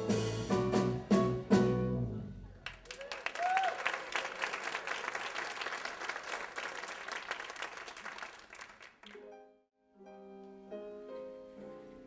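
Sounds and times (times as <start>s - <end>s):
audience applauding: 2.6s - 9.2s
person whooping: 2.9s - 4.2s.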